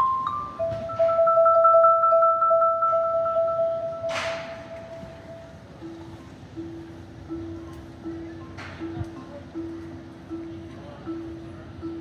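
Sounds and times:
vibraphone ringing: 0.0s - 12.0s.

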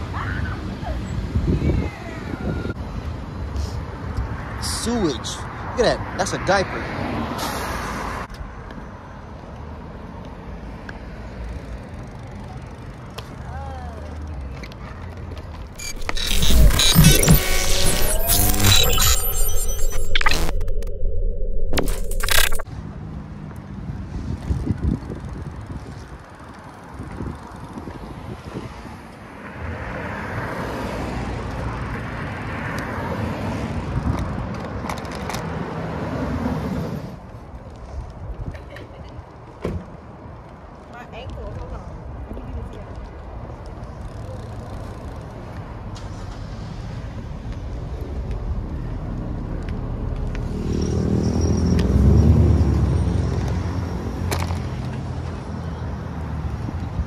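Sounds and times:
street traffic: 0.0s - 57.0s
car passing by: 5.6s - 8.3s, 28.4s - 34.2s.

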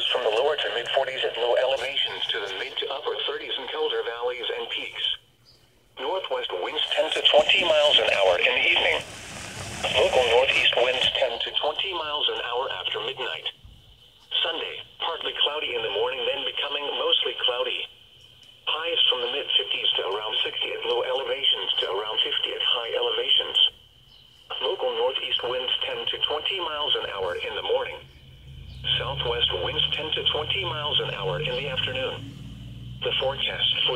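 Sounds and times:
person speaking over radio: 0.0s - 5.2s, 6.0s - 9.2s, 9.8s - 13.5s, 24.5s - 28.0s, 28.9s - 32.2s.

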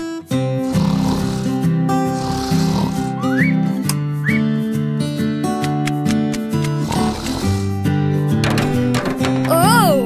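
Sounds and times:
light background music: 0.0s - 10.0s
cartoon snore: 0.5s - 3.5s, 6.6s - 7.8s
short rising whistles: 3.2s - 4.6s.

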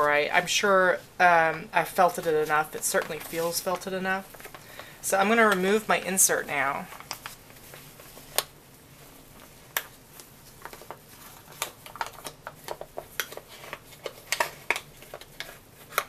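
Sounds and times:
plastic crinkling and clicking: 6.9s - 8.6s, 9.4s - 16.0s.

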